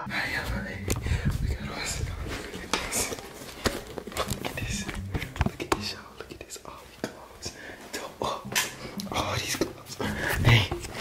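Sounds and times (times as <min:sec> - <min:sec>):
person whispering: 0:00.0 - 0:03.4, 0:04.2 - 0:11.0.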